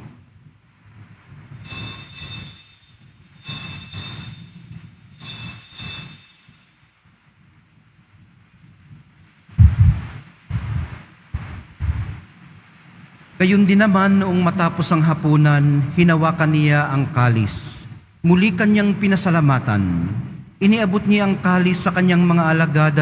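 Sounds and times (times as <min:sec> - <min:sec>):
altar bells ringing: 0:01.6 - 0:06.8
dull low thumps: 0:09.5 - 0:12.5.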